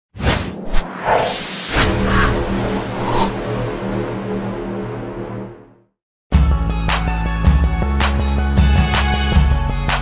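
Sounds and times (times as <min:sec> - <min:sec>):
quick whooshes: 0:00.2 - 0:03.5
rising sweep: 0:00.6 - 0:05.8.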